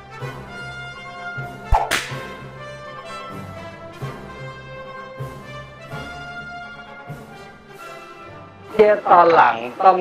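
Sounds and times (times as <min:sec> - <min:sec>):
crack and swish effect: 0:01.7 - 0:02.4.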